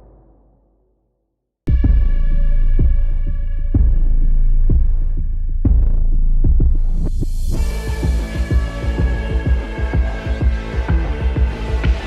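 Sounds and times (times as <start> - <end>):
deep throbbing bass pulse: 1.7 - 12.0.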